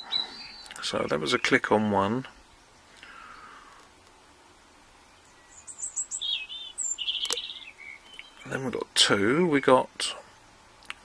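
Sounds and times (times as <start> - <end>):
songbird singing: 0.0 - 11.0.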